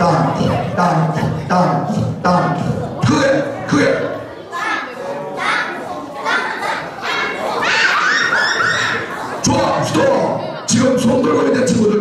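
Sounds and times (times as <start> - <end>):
children chanting together: 3.8 - 9.4.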